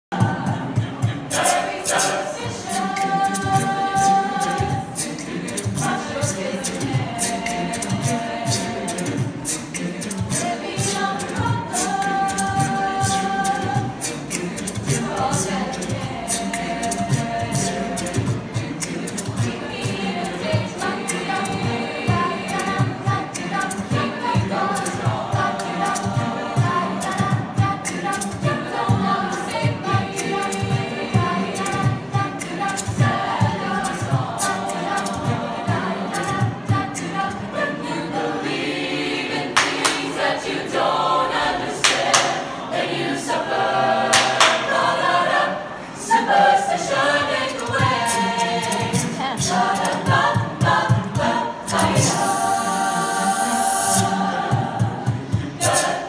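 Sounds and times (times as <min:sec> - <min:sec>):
vocal jazz choir singing: 0:00.0 - 0:56.0
steady low beat: 0:00.2 - 0:37.6.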